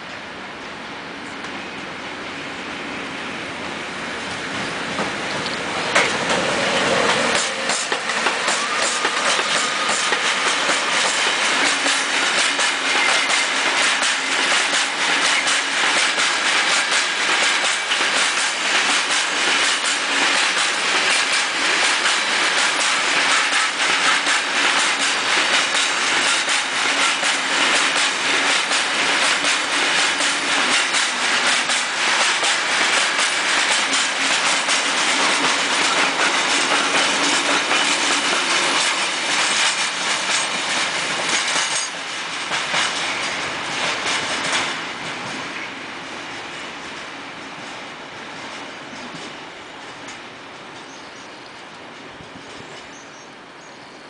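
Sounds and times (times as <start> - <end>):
freight train rolling past: 0.0 - 54.0
wheels clacking over rail joints: 4.3 - 45.6.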